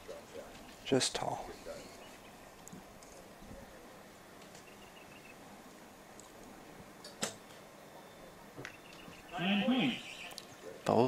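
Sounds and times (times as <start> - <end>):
faint chirping: 0.0 - 5.6, 7.4 - 11.0.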